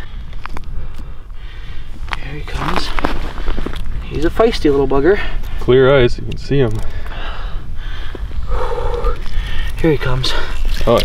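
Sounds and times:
wind rumbling on microphone: 0:00.0 - 0:11.0
fishing line rustling: 0:02.0 - 0:04.4, 0:09.0 - 0:11.0.

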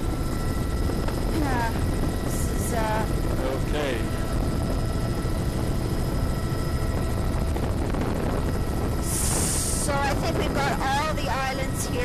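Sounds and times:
helicopter rotor and engine rumble: 0:00.0 - 0:12.0.

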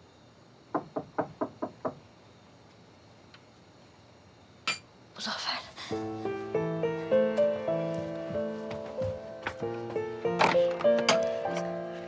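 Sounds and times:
knocking on a door: 0:00.7 - 0:02.0.

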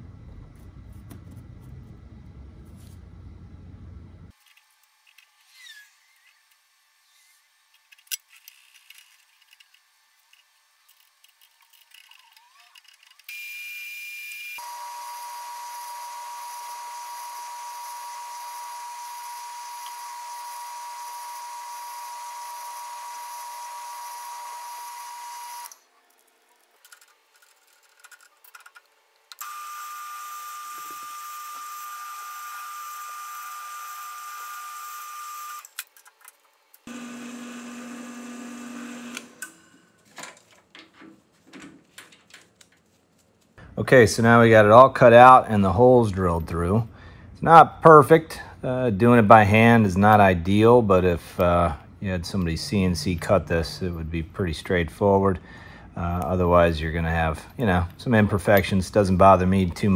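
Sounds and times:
drill press drilling metal: 0:14.6 - 0:25.8, 0:36.9 - 0:39.6.

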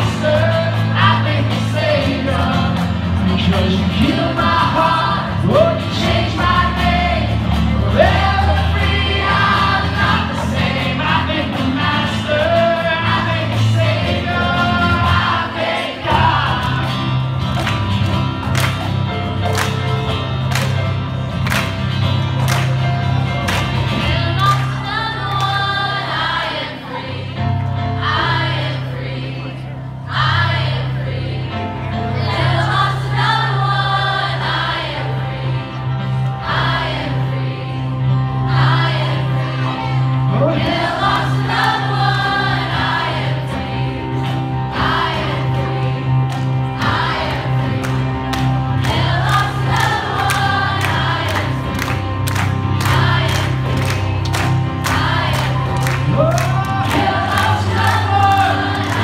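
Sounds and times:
acoustic guitar: 0:00.0 - 0:28.7
church band playing: 0:00.0 - 0:59.0
crowd singing along: 0:00.0 - 0:59.0.

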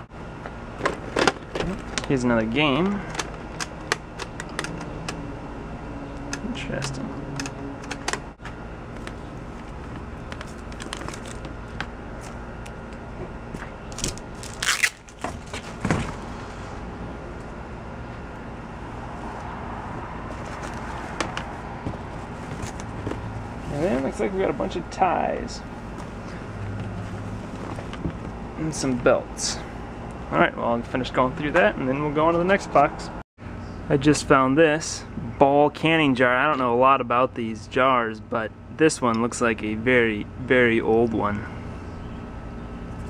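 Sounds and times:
low background hum: 0:00.0 - 0:43.0.

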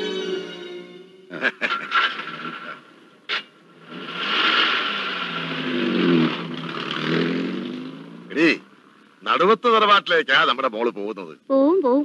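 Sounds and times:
car engine starting and revving: 0:01.8 - 0:10.2.

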